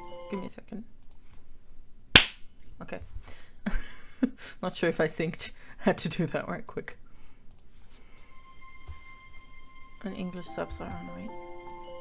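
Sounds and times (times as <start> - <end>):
sharp hand clap: 2.2 - 2.4.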